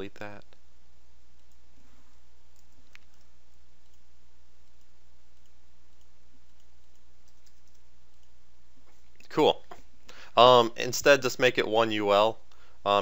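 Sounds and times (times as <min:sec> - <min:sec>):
steady low hum: 0:00.0 - 0:13.0
mouse and keyboard clicks: 0:02.5 - 0:08.4.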